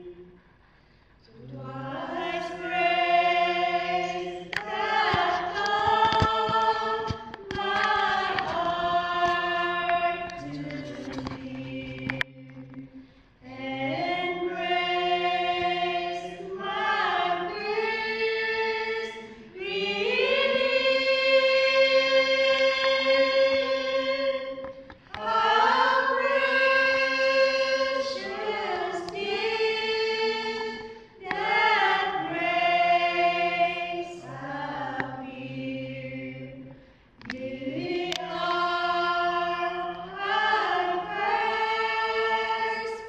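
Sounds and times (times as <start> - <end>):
women singing a carol: 0.0 - 0.3, 1.3 - 43.0.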